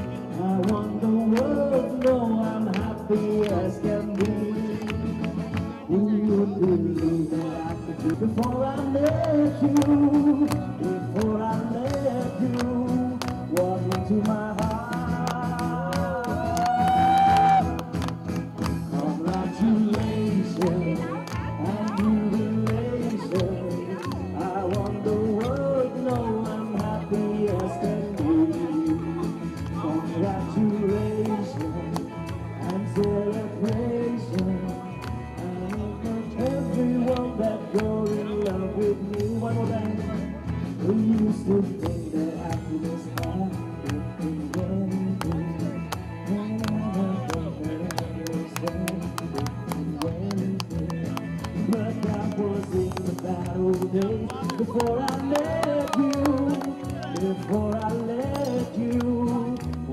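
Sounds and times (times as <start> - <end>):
man singing into a microphone: 0.0 - 18.0, 18.8 - 59.9
live band playing: 0.0 - 59.9.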